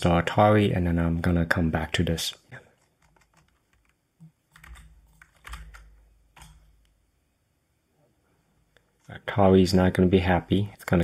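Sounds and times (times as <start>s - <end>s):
faint computer keystrokes: 2.8s - 7.0s.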